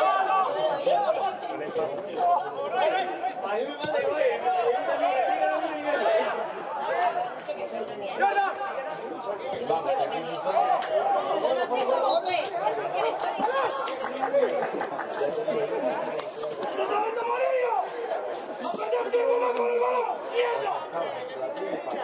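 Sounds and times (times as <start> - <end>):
indistinct chatter of voices: 0.0 - 22.0.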